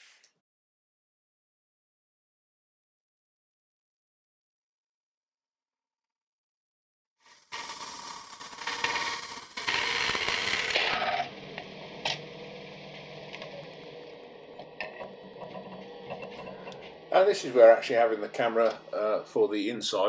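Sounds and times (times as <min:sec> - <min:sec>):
lathe running: 0:09.7 - 0:19.6.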